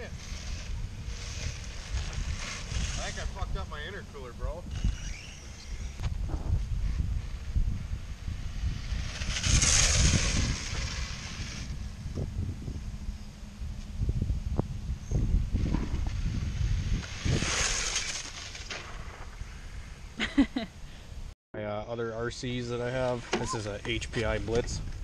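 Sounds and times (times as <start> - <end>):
electric toy car running on asphalt: 0.0 - 3.6, 4.4 - 6.1, 6.8 - 12.6, 15.8 - 19.1
wind rumbling on microphone: 0.0 - 20.2, 23.6 - 25.0.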